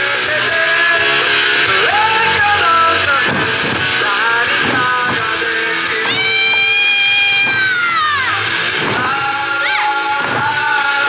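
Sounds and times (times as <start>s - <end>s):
folk music with drum beats: 0.0s - 11.0s.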